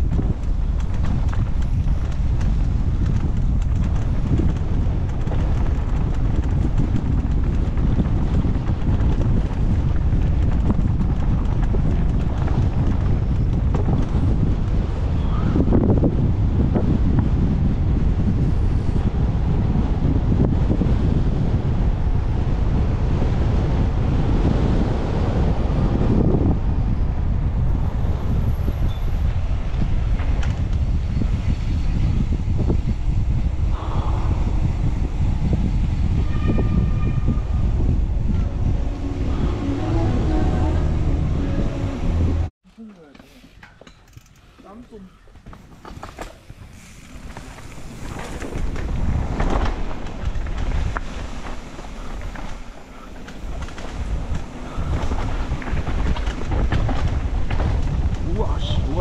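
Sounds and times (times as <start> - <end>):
bike tyres rolling over dirt: 0.0 - 33.8, 44.0 - 59.0
wind rumble on microphone: 0.0 - 42.6, 43.8 - 59.0.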